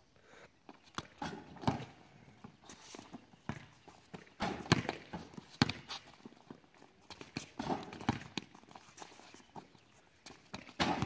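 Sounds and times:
basketballs bouncing on hard court: 1.0 - 2.0, 3.5 - 6.3, 7.1 - 8.6, 10.5 - 11.0.

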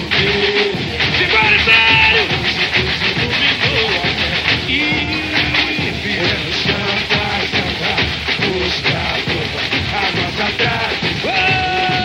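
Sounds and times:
fast samba percussion: 0.0 - 12.0
voices singing: 0.0 - 12.0.

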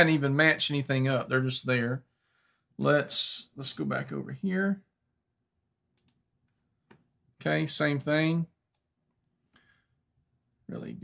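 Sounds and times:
computer mouse clicks: 6.0 - 6.2.

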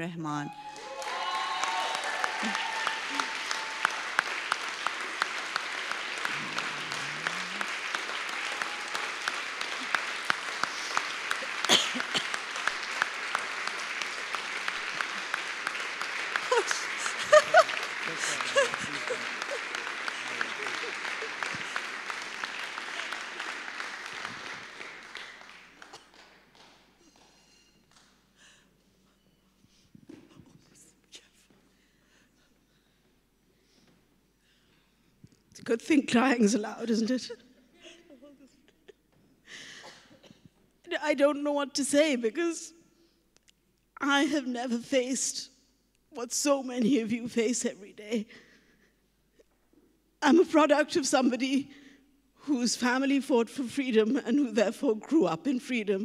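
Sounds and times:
audience applauding: 0.6 - 27.3
voices: 16.6 - 21.8.

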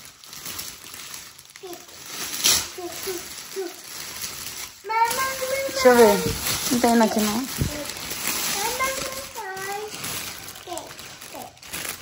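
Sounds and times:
cellophane wrap crinkling: 0.0 - 12.0
child's voice calling out: 4.8 - 6.4, 8.6 - 10.0, 10.6 - 11.6.

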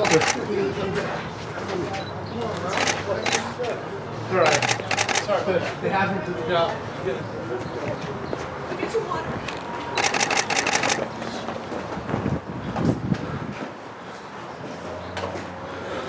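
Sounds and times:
camera shutter clicks: 4.5 - 5.3, 10.0 - 11.0.

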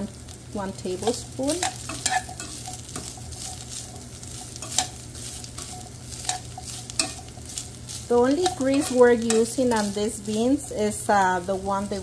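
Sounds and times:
ham sizzling in a skillet: 0.0 - 12.0
metal tongs clinking on pan: 1.0 - 10.6.

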